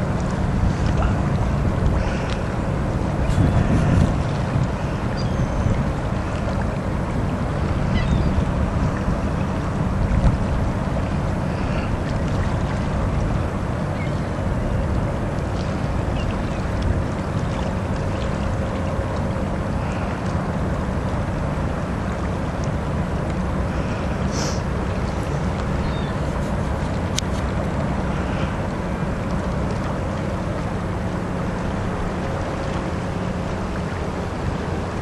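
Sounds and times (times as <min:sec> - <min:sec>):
boat engine rumble: 0:00.0 - 0:35.0
water noise: 0:00.0 - 0:35.0
wind: 0:00.0 - 0:35.0.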